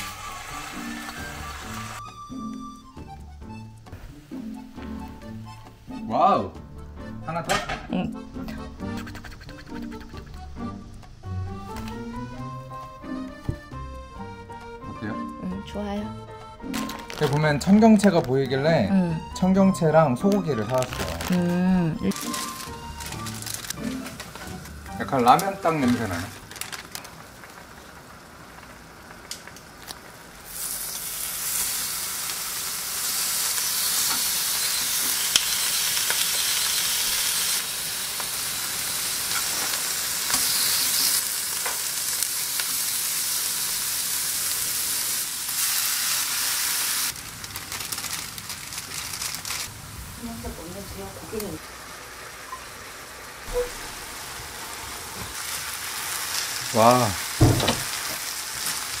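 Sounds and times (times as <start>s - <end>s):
beef sizzling in a frying pan: 0.0s - 8.2s, 16.6s - 59.0s.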